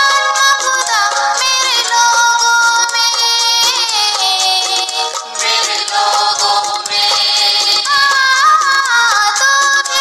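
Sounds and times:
devotional prayer song: 0.0 - 10.0.

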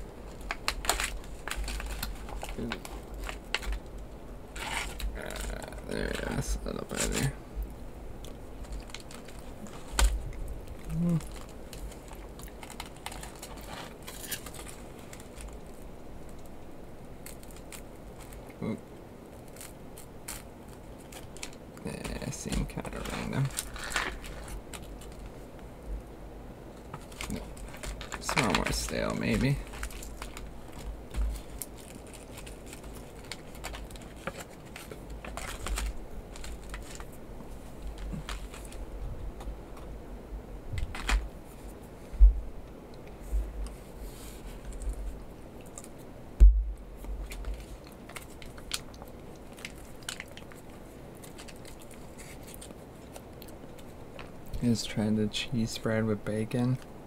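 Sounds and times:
foil pouch crinkling and tearing: 0.2 - 7.4, 8.2 - 25.6, 26.7 - 38.9, 47.0 - 55.0
rustles and clicks: 8.2 - 16.5, 17.2 - 25.7, 26.7 - 39.9, 40.7 - 42.4, 43.1 - 54.9.

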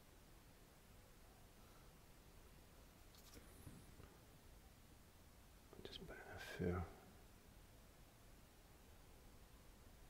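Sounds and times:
man whispering: 5.7 - 7.1.

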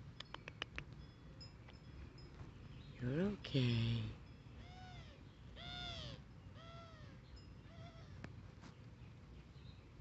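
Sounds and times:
animal calling: 4.6 - 8.3.

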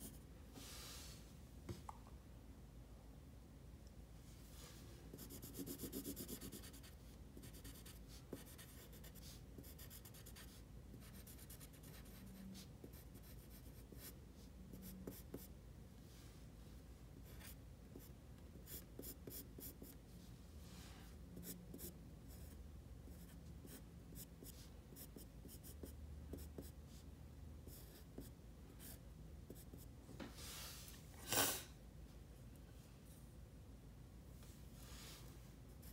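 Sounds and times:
pencil scratching on paper: 5.1 - 14.2, 14.8 - 15.5, 17.2 - 20.0, 21.4 - 22.6, 23.2 - 26.8.

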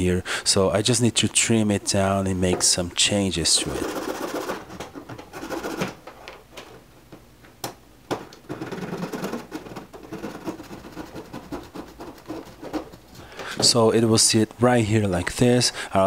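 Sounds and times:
hacksaw sawing plastic: 3.6 - 4.7, 8.5 - 13.0.

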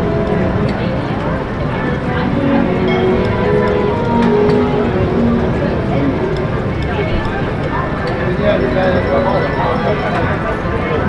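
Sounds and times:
chatter of many voices: 0.0 - 11.0.

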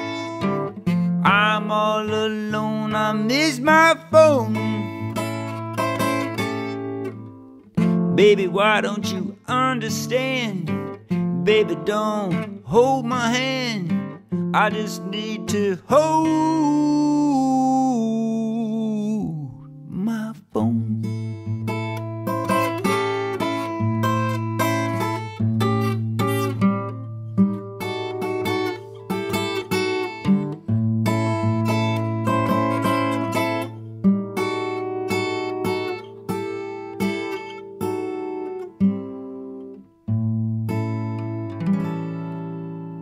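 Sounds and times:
acoustic guitar blues playing: 0.0 - 43.0.

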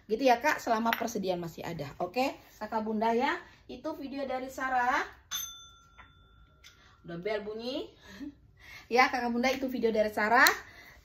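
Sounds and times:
bell ringing: 5.3 - 6.7.

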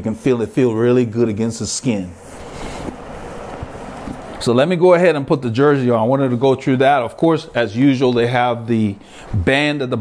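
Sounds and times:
fabric rustling: 2.2 - 4.4.

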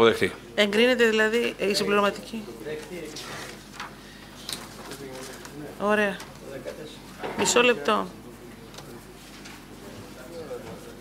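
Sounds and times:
faint background talk: 0.2 - 11.0.

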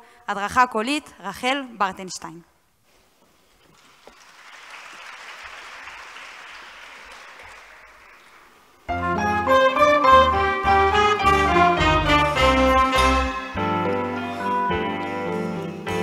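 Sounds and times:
audience applause: 3.8 - 8.8
orchestra playing loudly: 8.9 - 14.5.

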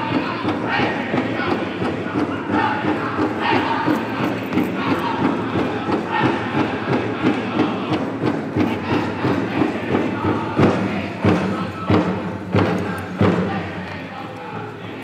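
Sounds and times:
big drum beating: 0.0 - 15.0
singers chanting: 0.0 - 15.0.

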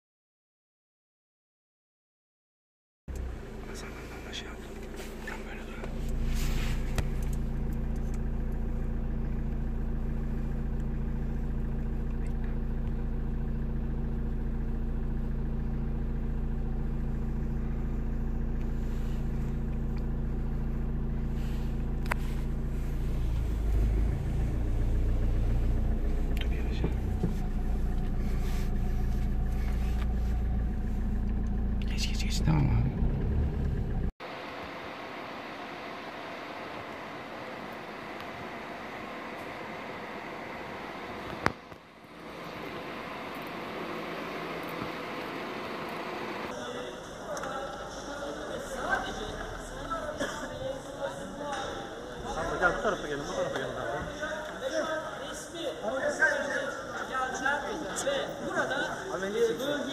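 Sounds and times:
car engine humming: 3.1 - 59.9.

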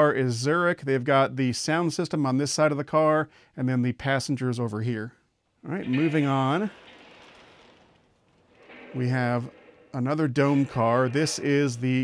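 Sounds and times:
model train wheels rolling: 5.7 - 12.0.

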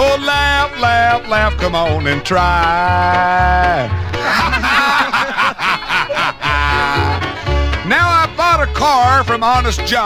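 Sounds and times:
country band instrumental: 0.0 - 10.0.

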